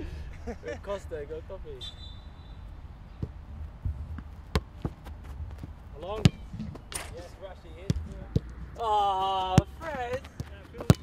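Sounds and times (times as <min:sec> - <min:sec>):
ball bouncing on grass: 0:03.2 - 0:07.1, 0:07.8 - 0:11.0.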